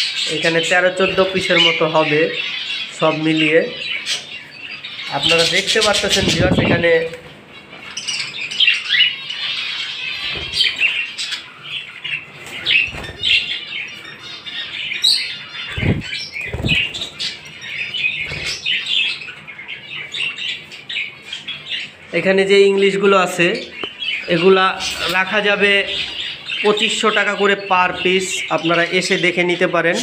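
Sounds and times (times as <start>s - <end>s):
budgerigars chirping: 0.0s - 30.0s
wings flapping against cage: 15.7s - 17.1s.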